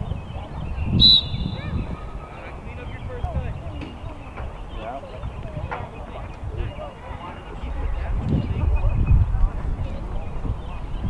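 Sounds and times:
distant voices: 0.0 - 11.0
wind on microphone: 0.0 - 11.0
high tone: 1.0 - 2.0
shrill whistle blast: 1.0 - 2.0.

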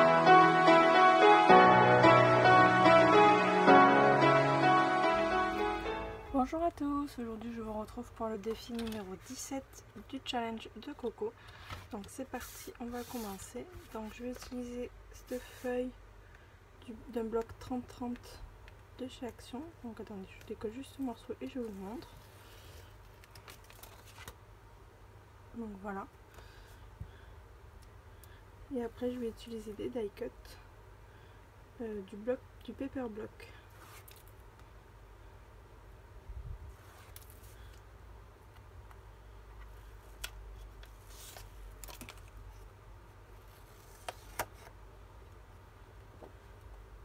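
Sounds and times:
low steady hum: 0.0 - 47.0
paper crackles: 11.5 - 14.6, 21.4 - 24.4, 40.2 - 42.6
paper tearing and rustling: 23.2 - 24.4.

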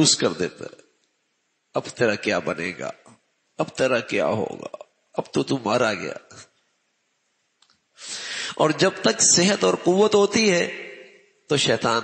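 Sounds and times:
man's voice: 0.0 - 0.8, 1.8 - 3.0, 3.6 - 6.5, 8.1 - 12.0.

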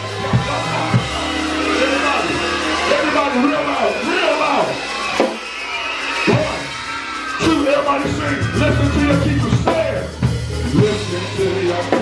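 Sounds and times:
live band music: 0.0 - 12.0
drum hits: 5.2 - 5.5.

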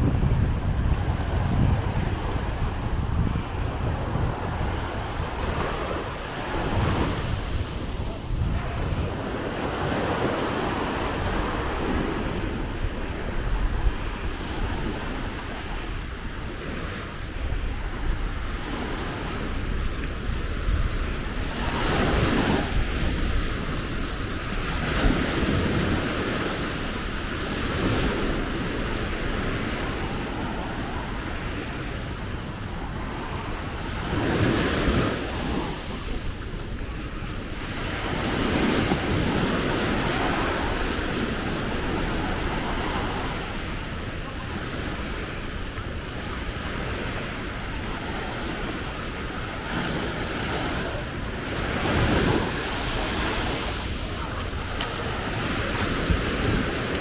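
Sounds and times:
small waves breaking on beach: 0.0 - 57.0
wind rumble on microphone: 0.0 - 57.0.

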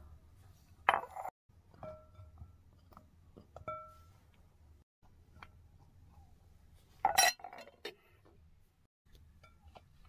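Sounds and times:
glass bowl clinking: 0.9 - 4.2, 7.0 - 7.8.

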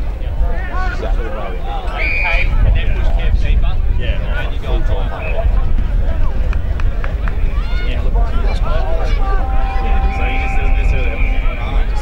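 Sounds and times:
steady low rumble: 0.0 - 12.0
players and spectators shouting: 4.3 - 12.0
umpire's whistle blasts: 9.0 - 12.0.

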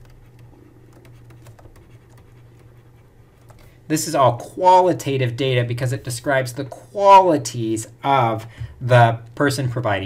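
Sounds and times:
stylus tapping and scratching: 0.0 - 3.8
steady low hum: 0.0 - 10.0.

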